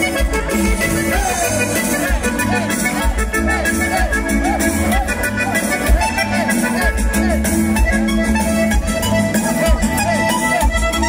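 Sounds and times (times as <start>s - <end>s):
accordion dance music: 0.0s - 11.0s.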